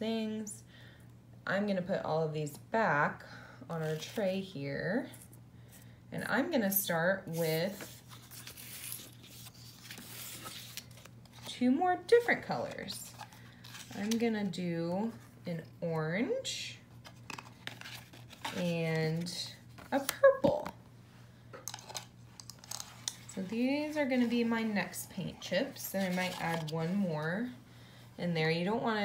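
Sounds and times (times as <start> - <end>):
steady low hum: 0.0 - 29.0
paper cards rustling on tabletop: 7.3 - 11.6, 12.2 - 14.3, 16.9 - 20.7, 25.6 - 27.1.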